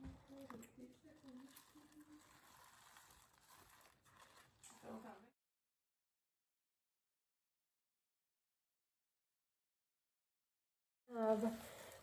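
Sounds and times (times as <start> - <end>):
cloth bag rustling: 0.2 - 5.2.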